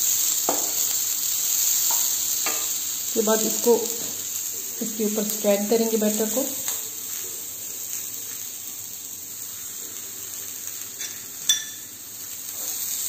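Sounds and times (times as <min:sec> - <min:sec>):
glass plate clinking on stone: 0:11.0 - 0:11.9.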